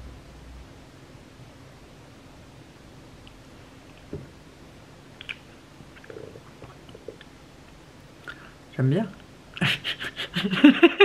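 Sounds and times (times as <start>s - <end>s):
lip smacks and mouth clicks: 5.2s - 8.4s.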